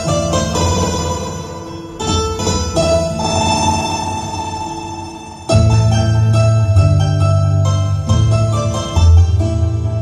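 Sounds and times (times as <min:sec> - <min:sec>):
instrumental backing music: 0:00.0 - 0:10.0.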